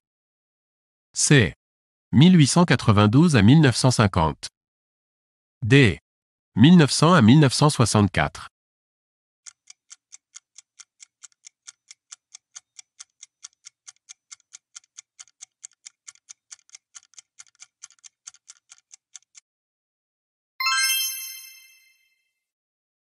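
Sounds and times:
clock-like timer ticking: 9.4s - 19.4s
bell-like ding: 20.6s - 22.2s.

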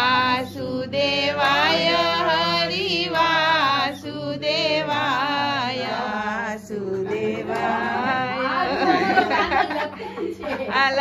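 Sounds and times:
voices chanting: 0.0s - 9.5s.

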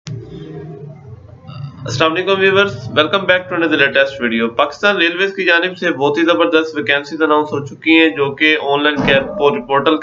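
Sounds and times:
man's low rough voice: 1.5s - 10.0s.

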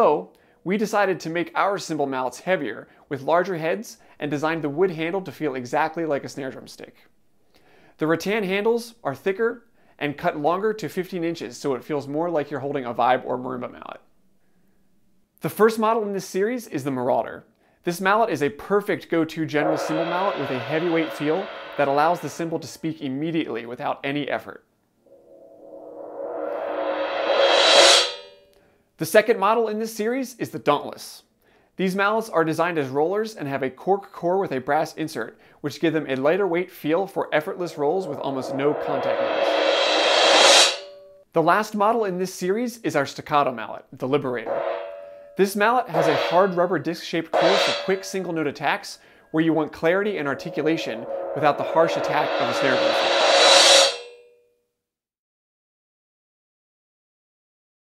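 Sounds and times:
suspended cymbal roll: 18.7s - 22.8s, 25.1s - 28.5s, 37.6s - 41.2s, 44.5s - 46.6s, 47.4s - 48.5s, 49.4s - 54.2s.

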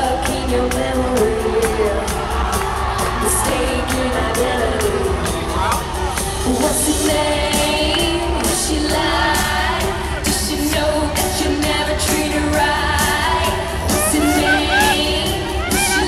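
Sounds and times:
woman singing: 0.0s - 5.6s, 6.2s - 16.0s.

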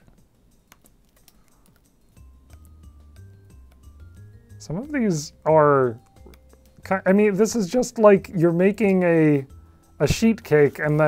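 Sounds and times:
book pages flipping: 10.4s - 11.0s.

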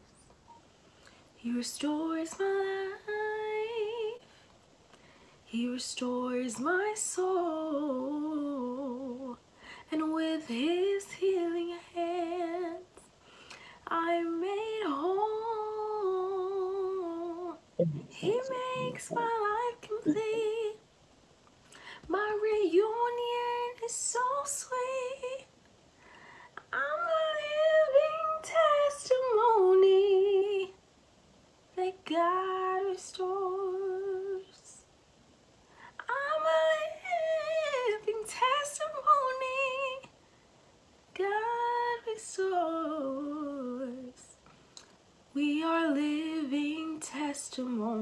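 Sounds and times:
woman singing gospel song: 1.4s - 4.2s, 5.5s - 13.0s, 13.8s - 20.8s, 22.0s - 25.5s, 26.6s - 30.8s, 31.8s - 34.8s, 36.0s - 40.1s, 41.1s - 44.3s, 45.4s - 48.0s
short breath: 21.7s - 22.1s, 26.0s - 26.6s.

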